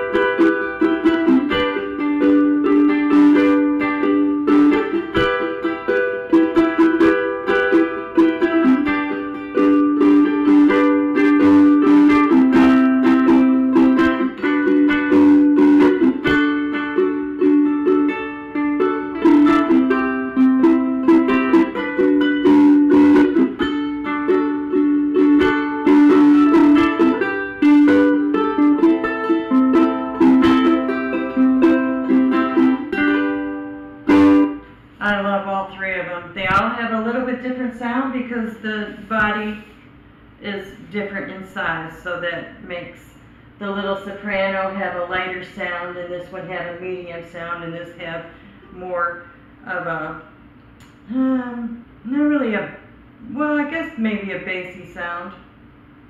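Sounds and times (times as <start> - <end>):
ukulele plucked tune: 0.0 - 35.0.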